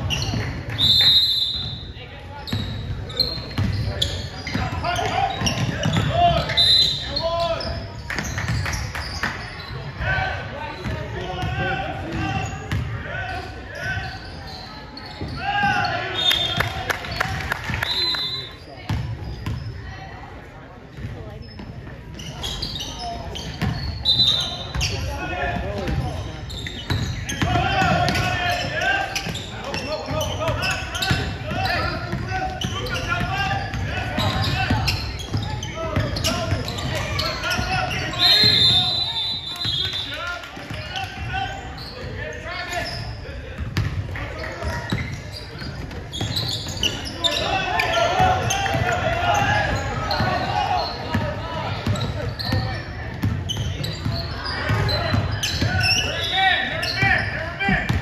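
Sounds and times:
voices echoing in hall: 0:00.0 - 0:58.0.

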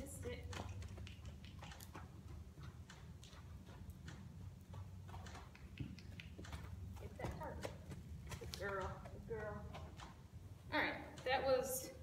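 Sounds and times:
hooves trotting on dirt: 0:00.0 - 0:12.0
steady low rumble: 0:00.0 - 0:12.0.

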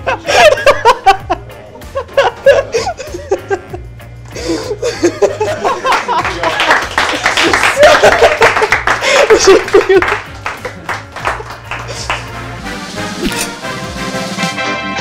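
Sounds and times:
voices and laughter: 0:00.0 - 0:03.8, 0:04.4 - 0:10.1
background music: 0:00.0 - 0:15.0
small group clapping: 0:05.5 - 0:12.5.

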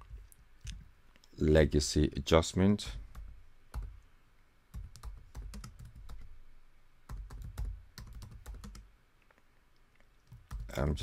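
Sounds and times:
computer keyboard typing: 0:03.0 - 0:03.9, 0:04.7 - 0:06.3, 0:07.1 - 0:08.9, 0:10.3 - 0:10.8.

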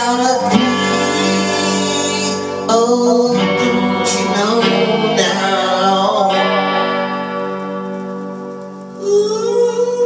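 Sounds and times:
electric guitar chord strummed: 0:00.0 - 0:10.0.

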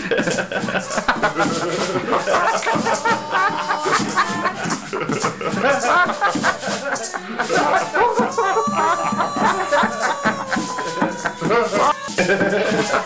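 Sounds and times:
maracas shaking: 0:00.0 - 0:13.0
voices: 0:00.8 - 0:13.0
live band playing: 0:01.4 - 0:13.0.

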